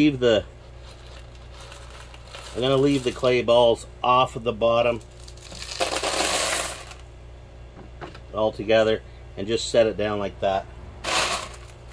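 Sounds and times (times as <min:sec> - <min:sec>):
clay pebbles rattling into plastic bowl: 0:00.8 - 0:03.4, 0:05.1 - 0:07.0, 0:11.1 - 0:11.9.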